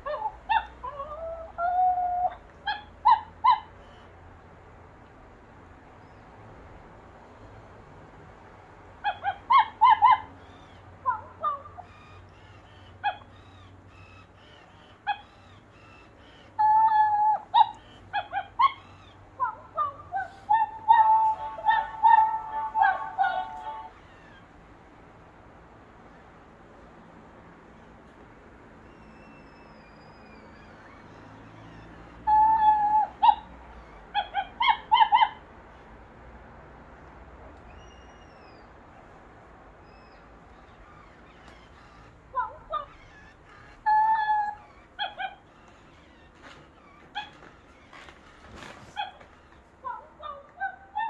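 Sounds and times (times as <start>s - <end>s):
electronic toy puppy whine: 0.0s - 4.1s, 9.1s - 24.5s, 28.8s - 35.3s, 39.8s - 48.2s
electronic toy puppy yips: 0.0s - 4.1s, 9.0s - 24.5s, 28.8s - 35.8s, 37.7s - 38.7s, 39.8s - 51.0s.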